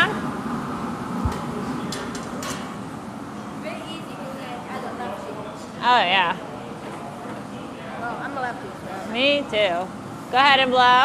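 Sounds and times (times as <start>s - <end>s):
gas furnace roaring: 0.0s - 11.0s.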